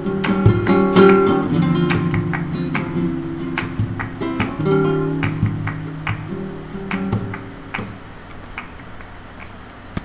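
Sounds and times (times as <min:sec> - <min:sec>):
flamenco acoustic guitar: 0:00.0 - 0:09.6.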